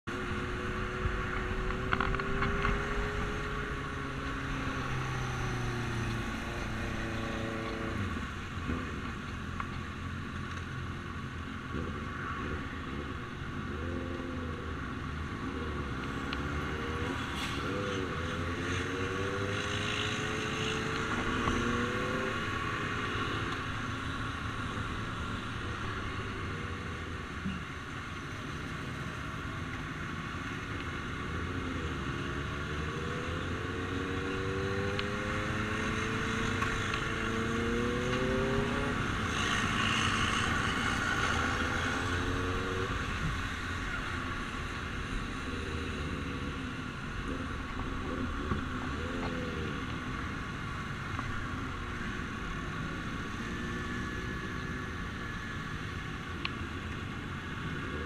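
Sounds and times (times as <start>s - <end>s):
wind and road noise: 0.0s - 58.0s
motorcycle engine accelerating: 0.1s - 9.2s, 31.5s - 50.5s.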